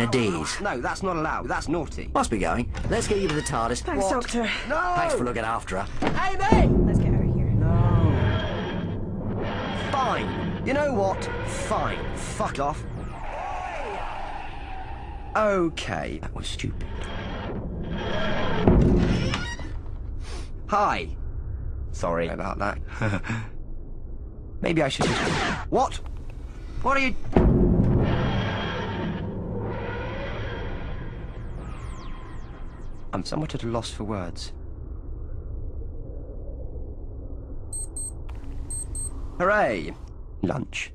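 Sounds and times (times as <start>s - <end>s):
steady low hum: 25.6s - 40.9s
short high electronic beeps: 37.8s - 39.2s.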